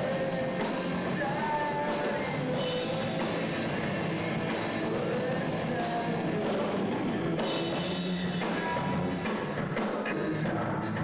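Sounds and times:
drum kit: 0.0s - 11.0s
electric guitars: 0.0s - 11.0s.

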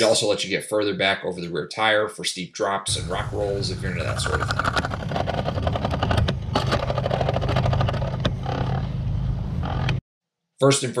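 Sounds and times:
wind and tyre rumble: 2.9s - 10.0s
bike rattling and clicking: 3.1s - 9.0s.

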